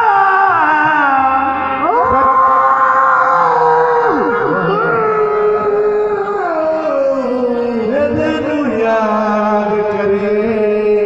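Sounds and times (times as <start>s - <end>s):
voice holding long high note: 0.0s - 8.4s.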